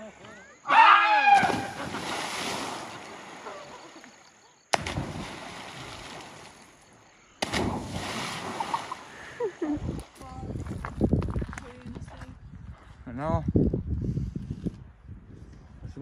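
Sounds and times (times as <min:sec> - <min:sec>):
splashes into river water: 0:01.1 - 0:10.2
water rushing: 0:07.5 - 0:09.6.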